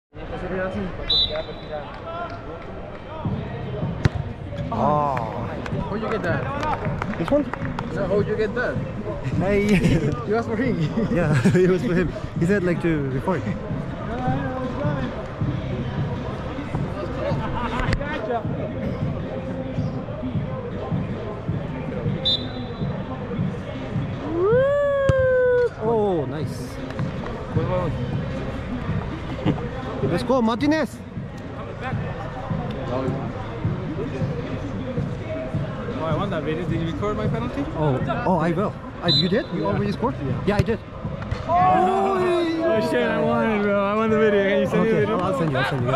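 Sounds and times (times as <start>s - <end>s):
balls thudding on turf: 3.9s - 4.3s, 40.5s - 41.6s.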